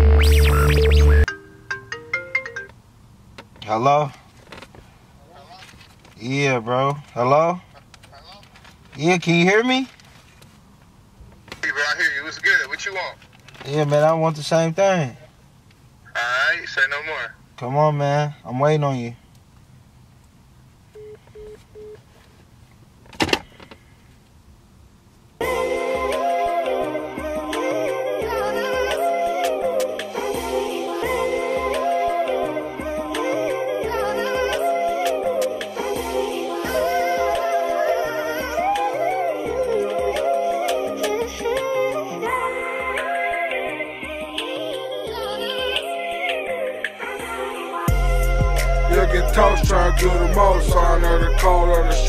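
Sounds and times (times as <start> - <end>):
loud burst of noise: 0.0 - 1.3
loud electronic music: 0.0 - 1.3, 47.9 - 52.0
mobile phone ringtone melody: 0.0 - 2.7
phone call-end beeps: 21.0 - 22.0.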